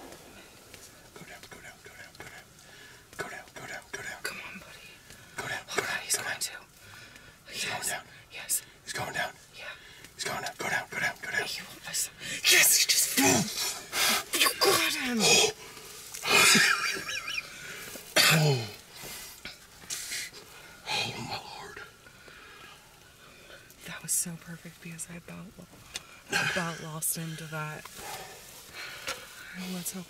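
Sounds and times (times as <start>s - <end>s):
person whispering: 1.2s - 2.5s, 3.2s - 6.7s, 7.5s - 13.5s, 14.2s - 15.6s, 20.0s - 21.9s.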